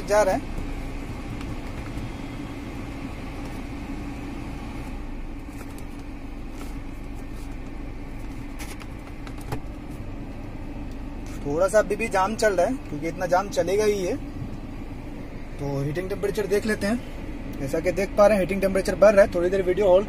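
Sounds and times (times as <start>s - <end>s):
car engine idling: 0.0s - 20.0s
heater blower fan running: 0.0s - 20.0s.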